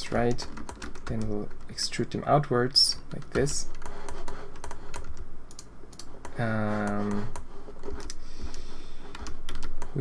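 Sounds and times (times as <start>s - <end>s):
keyboard keys tapping: 0.1s - 1.8s, 3.1s - 10.0s
mouse clicking: 3.1s - 10.0s.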